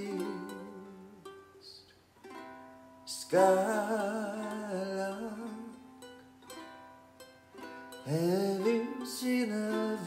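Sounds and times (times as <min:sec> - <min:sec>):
ukulele plucked chords: 0:00.0 - 0:10.0.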